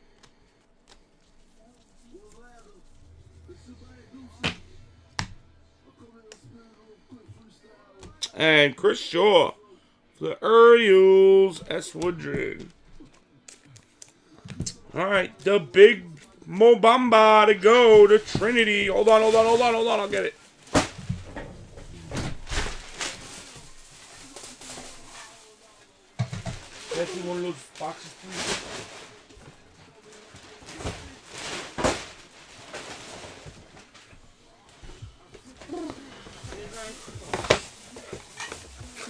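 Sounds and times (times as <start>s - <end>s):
faint muffled voices: 1.4s - 8.3s, 27.6s - 39.0s.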